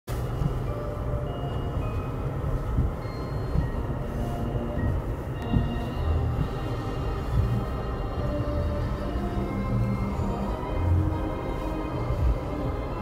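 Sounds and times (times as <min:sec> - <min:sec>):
faint musical tones: 0:00.1 - 0:13.0
vehicle driving rumble: 0:00.1 - 0:13.0.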